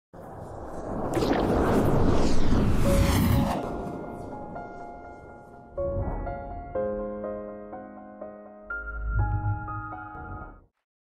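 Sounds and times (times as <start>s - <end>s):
whooshing sweeps: 0.2s - 6.0s
deep rumble: 0.2s - 7.2s.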